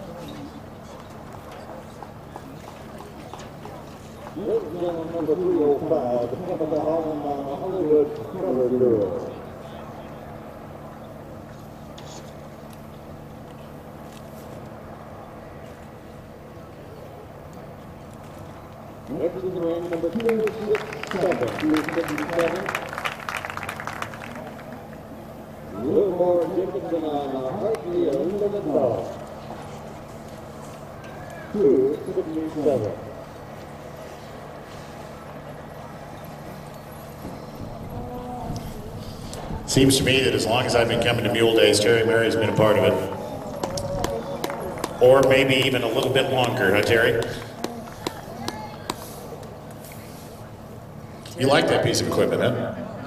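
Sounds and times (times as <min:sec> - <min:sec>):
low hum: 0:20.7 - 0:53.0.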